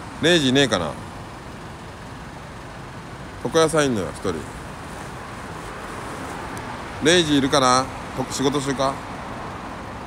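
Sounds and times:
traffic hum: 0:00.0 - 0:10.0.

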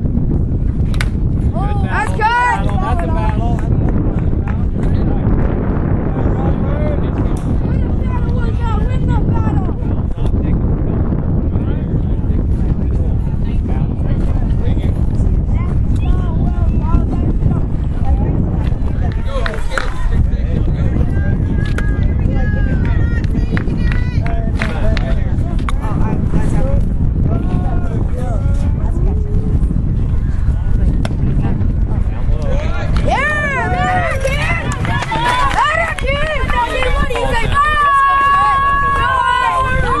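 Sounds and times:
wind rumble on microphone: 0:00.0 - 0:40.0
spectators shouting and cheering: 0:01.4 - 0:10.0, 0:32.1 - 0:40.0.

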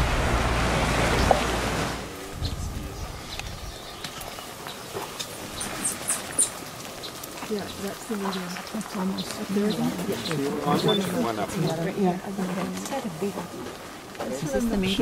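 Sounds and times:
wind rumbling on microphone: 0:00.0 - 0:10.4.

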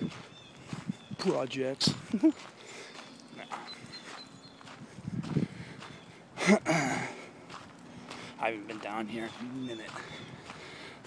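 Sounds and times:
footsteps on a trail: 0:00.0 - 0:11.0.

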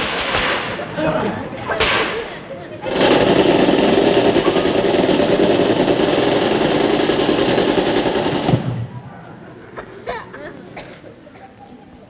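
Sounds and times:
tommy gun rapid fire: 0:00.0 - 0:01.0, 0:01.7 - 0:09.2.

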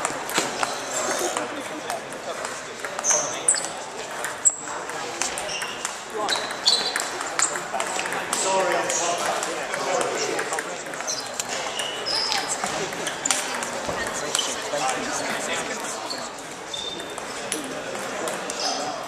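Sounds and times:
murmur of voices: 0:00.0 - 0:19.0.

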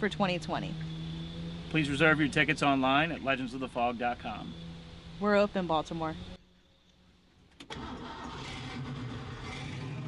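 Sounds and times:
car engine running: 0:00.0 - 0:06.4
engine starting click: 0:07.5 - 0:10.0.

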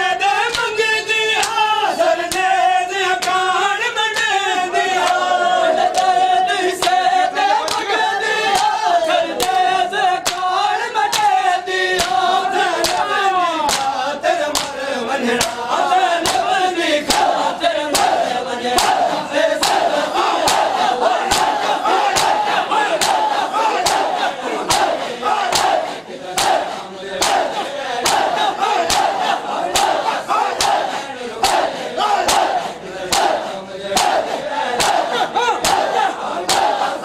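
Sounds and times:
men chanting together: 0:00.0 - 0:37.0
hands beating on chests: 0:16.2 - 0:16.5, 0:19.6 - 0:33.4, 0:34.0 - 0:36.9.

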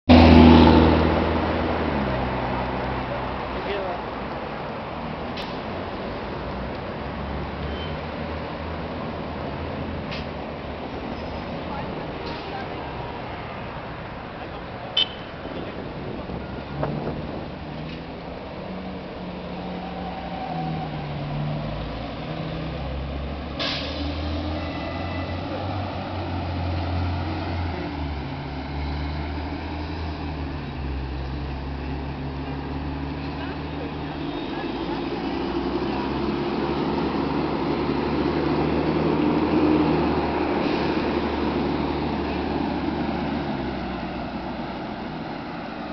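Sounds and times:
road traffic noise: 0:00.0 - 0:45.9
vehicle engine humming: 0:00.1 - 0:45.9.

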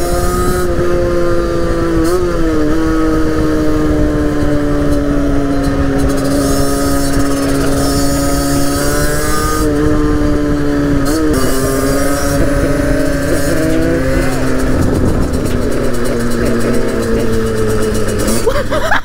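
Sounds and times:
motorcycle engine at high revs: 0:00.0 - 0:19.0
wind rumble on microphone: 0:00.0 - 0:19.0.

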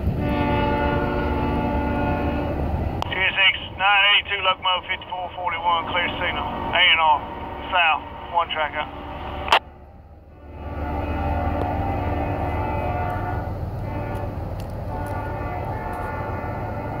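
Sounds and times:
diesel locomotive horn: 0:00.0 - 0:17.0
train rumble: 0:00.0 - 0:17.0.

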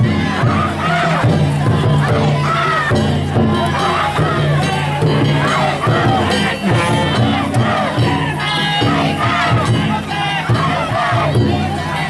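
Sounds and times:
crowd shouting together: 0:00.0 - 0:12.0
low rhythmic beat: 0:00.0 - 0:12.0.

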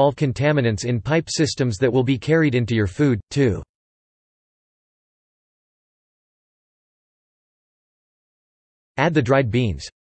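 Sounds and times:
synthesized narrating voice: 0:00.0 - 0:03.7, 0:09.0 - 0:10.0.

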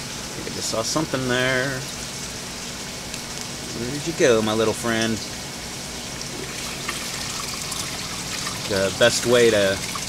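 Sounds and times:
water trickling into tank: 0:00.0 - 0:10.0.

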